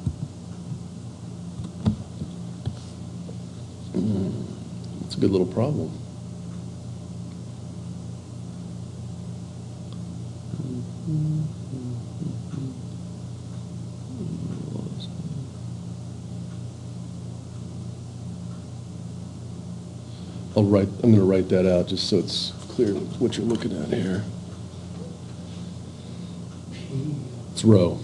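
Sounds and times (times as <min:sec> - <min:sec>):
steady low hum: 0:00.0 - 0:28.0
faint murmurs: 0:03.3 - 0:05.2, 0:10.4 - 0:13.0, 0:14.0 - 0:15.8, 0:20.1 - 0:28.0.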